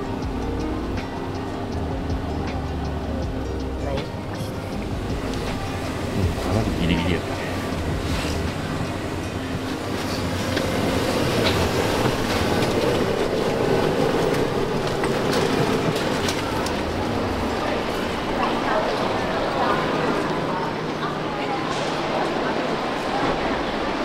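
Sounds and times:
coach bus rumble: 0.0 - 24.0
people talking indistinctly: 3.3 - 8.5.

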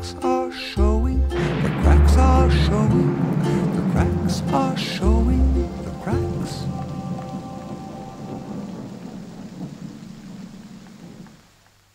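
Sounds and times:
low crackling noise: 0.2 - 11.9
song's last notes ringing: 1.3 - 7.5.

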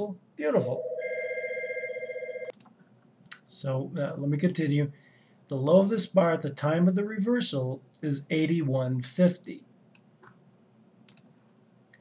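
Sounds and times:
electronic telephone ringing: 0.7 - 2.5.

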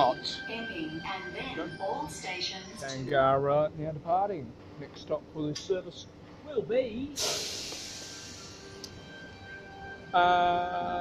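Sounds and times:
compressed air hiss from train: 7.2 - 8.9.

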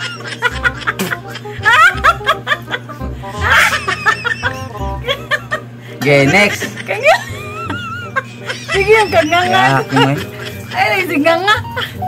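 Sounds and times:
people laughing and giggling: 0.0 - 12.0
background music with low beat: 0.5 - 6.3.

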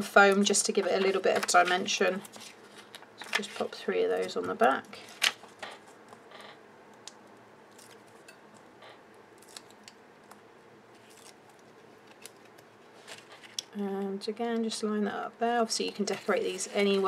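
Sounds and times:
paper rustling: 0.3 - 6.0, 10.9 - 13.6, 15.8 - 17.0.

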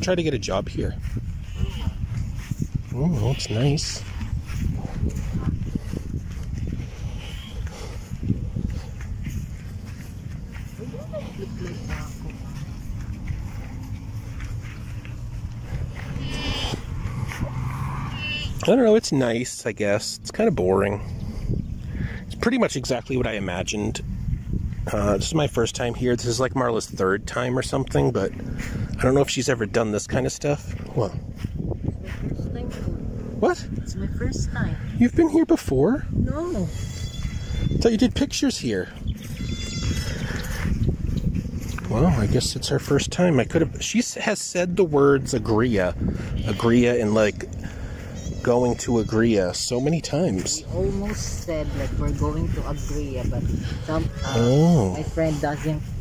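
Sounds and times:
wind rumble on microphone: 0.0 - 56.0
farm animal bleating: 1.4 - 2.1, 3.1 - 4.2, 16.0 - 16.9, 17.8 - 18.7, 36.4 - 38.1, 39.2 - 40.7, 46.2 - 50.6, 53.7 - 55.6.

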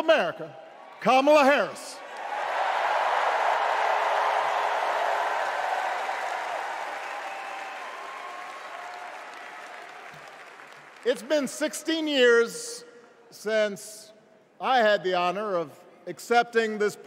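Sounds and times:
crowd cheering and applauding: 2.0 - 11.2.

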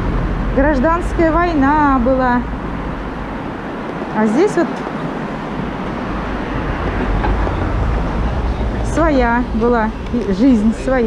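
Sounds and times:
electric scooter riding noise: 0.0 - 11.0
street traffic rumble: 0.0 - 11.0.

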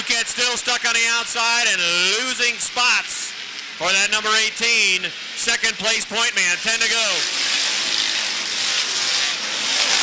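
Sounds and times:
racing car engines: 0.0 - 10.0.

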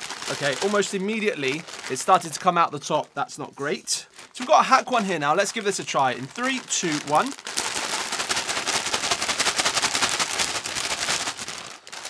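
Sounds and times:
foil chip bag crinkling: 0.0 - 3.1, 4.0 - 12.0.

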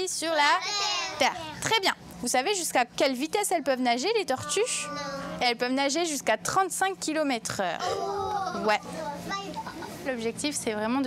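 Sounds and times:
young children exclaiming: 0.6 - 1.5, 7.8 - 9.6.

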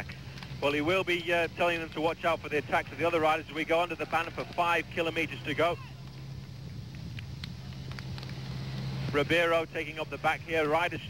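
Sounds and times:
engine hum: 0.0 - 11.0
faint clicks: 6.9 - 8.6.

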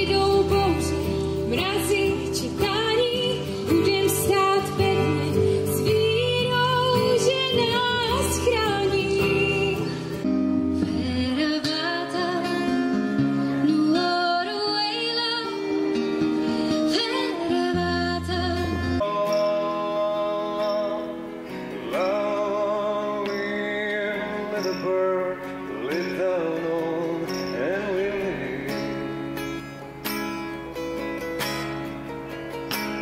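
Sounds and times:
woman singing: 0.0 - 19.2
strummed acoustic guitar: 0.0 - 33.0.

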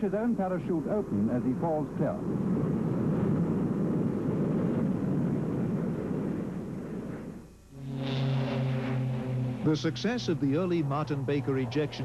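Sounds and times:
aircraft engine drone: 0.0 - 12.0.

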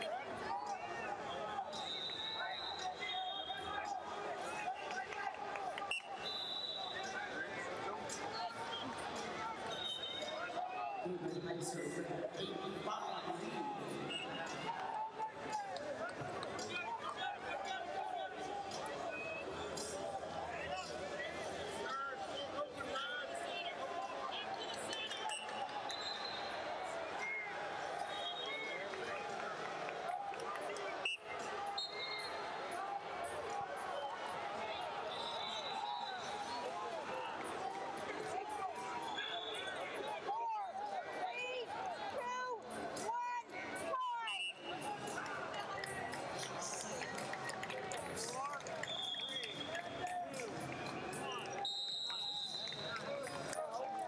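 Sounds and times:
crowd of voices calling and talking: 0.0 - 54.0.

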